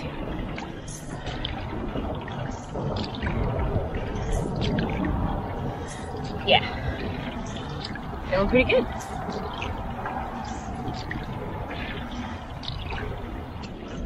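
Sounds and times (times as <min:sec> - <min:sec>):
paddle splashing water: 0:00.0 - 0:14.0.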